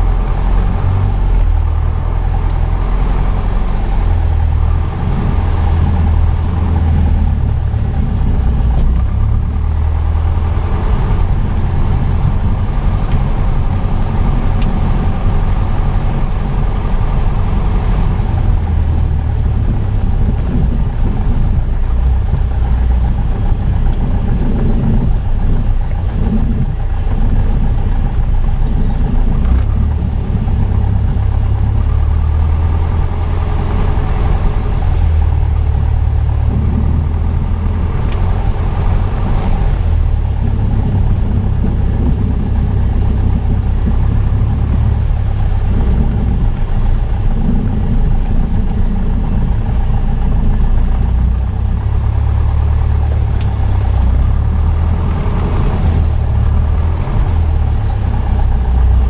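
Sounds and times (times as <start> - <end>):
propeller aircraft engine droning: 0.0 - 59.0.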